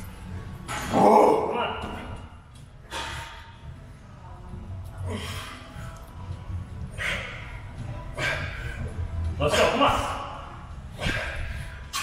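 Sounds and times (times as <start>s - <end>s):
low gym rumble: 0.0s - 12.0s.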